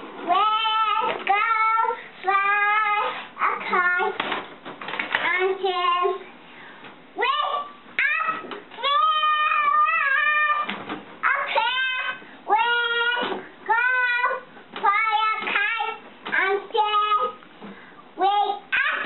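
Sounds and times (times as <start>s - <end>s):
girl singing: 0.0s - 4.4s, 5.1s - 6.4s, 7.2s - 17.4s, 18.1s - 19.0s.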